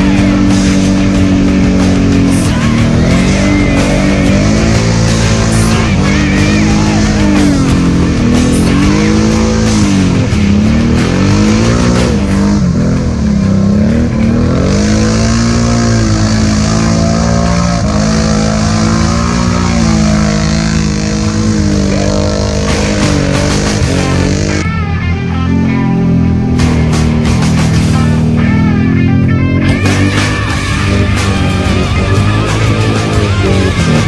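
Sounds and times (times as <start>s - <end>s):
atv engine revving: 0.0s - 34.0s.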